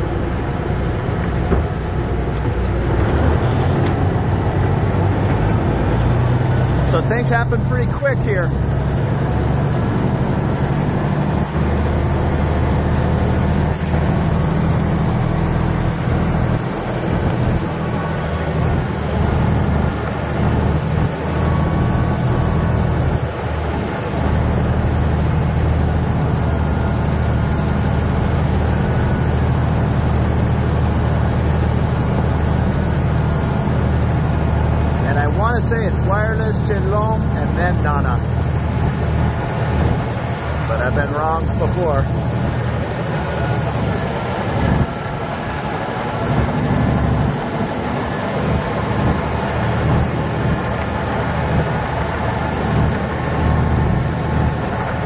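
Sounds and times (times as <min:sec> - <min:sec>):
boat diesel engine droning: 0:00.0 - 0:55.0.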